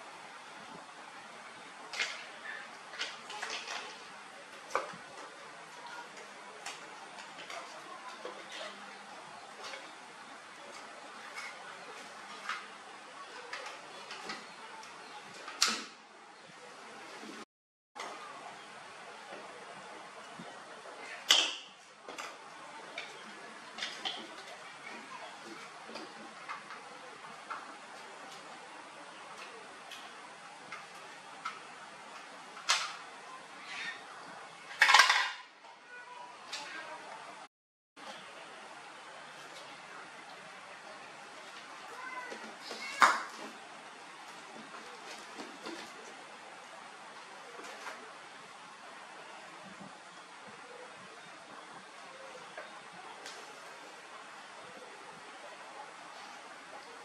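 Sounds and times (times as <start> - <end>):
steady low hiss: 0.0 - 17.4
hard objects clattering: 34.7 - 35.4.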